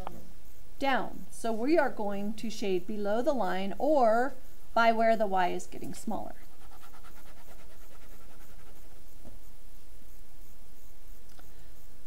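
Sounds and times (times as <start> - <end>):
pen scribbling on paper: 6.4 - 9.0.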